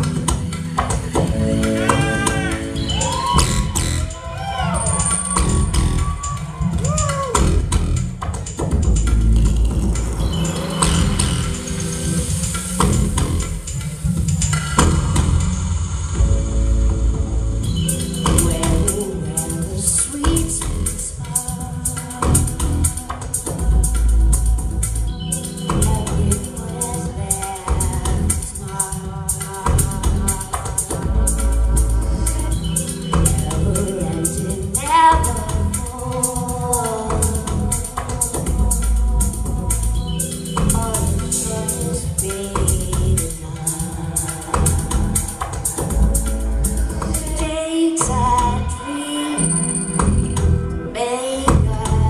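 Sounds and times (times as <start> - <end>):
woman singing lead vocal: 0.0 - 7.9, 17.9 - 52.0
bass line: 0.0 - 21.2, 22.1 - 28.7, 29.5 - 36.1, 36.9 - 43.6, 44.5 - 52.0
rhythmic high percussion: 0.0 - 52.0
deep sustained bass: 3.4 - 4.2, 5.4 - 6.2, 7.3 - 8.2, 8.8 - 12.2, 12.8 - 13.7, 14.8 - 19.1, 23.6 - 26.6, 31.0 - 34.1, 38.5 - 41.3, 45.9 - 48.8.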